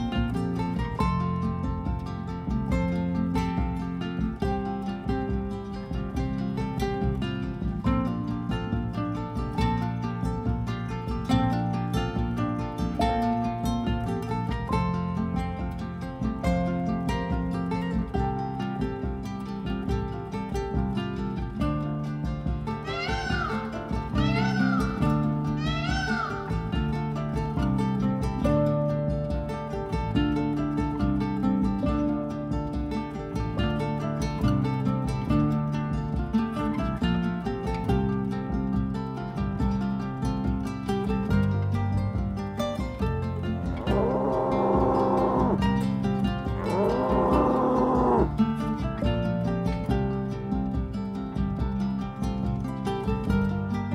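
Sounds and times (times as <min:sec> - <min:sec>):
acoustic guitar music: 0:00.0 - 0:53.9
buffalo lowing: 0:43.7 - 0:45.8, 0:46.4 - 0:48.4
high animal calls: 0:43.8 - 0:45.6, 0:46.6 - 0:48.3.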